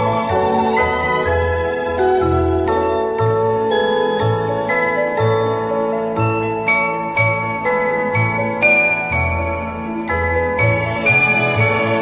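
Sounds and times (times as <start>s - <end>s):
bright bell-like notes: 0.0s - 12.0s
orchestral christmas carol: 0.0s - 12.0s.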